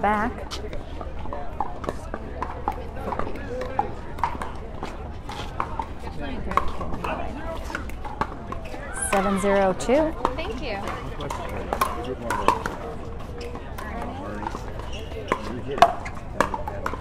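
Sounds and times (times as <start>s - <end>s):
murmur of voices: 0.0s - 17.0s
pickleballs struck by paddles: 0.2s - 17.0s.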